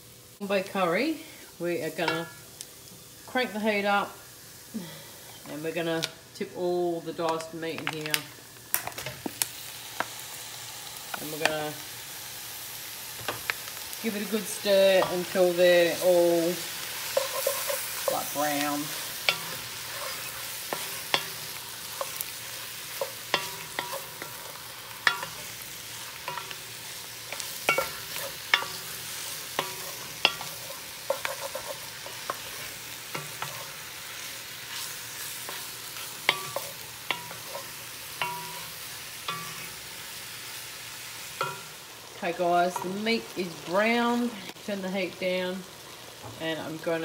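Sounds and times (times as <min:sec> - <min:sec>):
meat sizzling in a pan: 0:00.0 - 0:06.4, 0:07.4 - 0:47.0.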